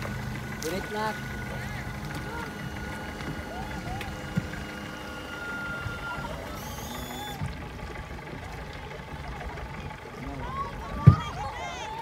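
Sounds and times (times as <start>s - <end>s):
outboard engine rumble: 0.0s - 12.0s
water and wind noise: 0.0s - 12.0s.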